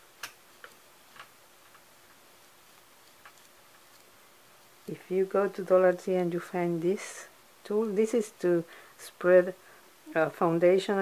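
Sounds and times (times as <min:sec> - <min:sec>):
faint clicks and taps: 0:00.2 - 0:02.2, 0:03.0 - 0:04.1.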